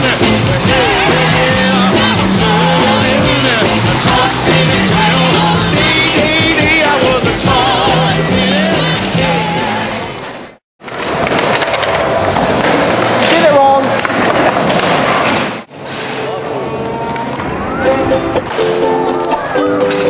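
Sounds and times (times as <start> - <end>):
song with singing: 0.0 - 10.2
skateboard wheels rolling on pavement: 10.1 - 20.0.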